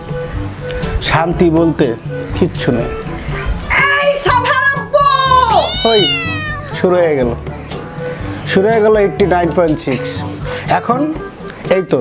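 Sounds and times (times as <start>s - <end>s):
background music: 0.0s - 12.0s
cat meowing: 5.4s - 6.9s.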